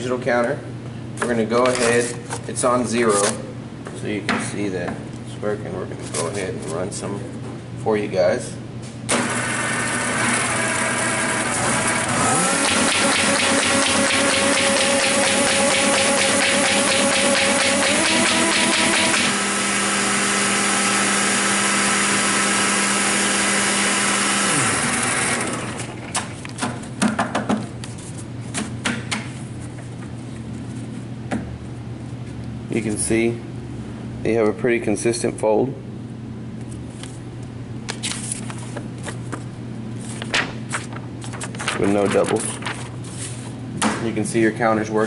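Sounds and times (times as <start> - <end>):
paper folder machine humming: 9.1 - 26.9, 37.9 - 43.6
paper sheets clattering: 37.9 - 43.5
paper rustling: 37.9 - 43.6.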